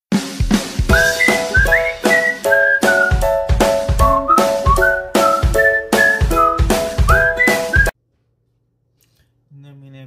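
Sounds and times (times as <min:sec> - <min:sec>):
steady drum beat: 0:00.1 - 0:07.9
whistled melody: 0:00.9 - 0:08.0.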